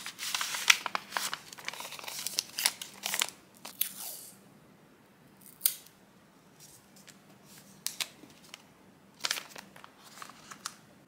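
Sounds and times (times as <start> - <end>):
paper crinkling: 0.0 - 3.8, 9.2 - 10.8.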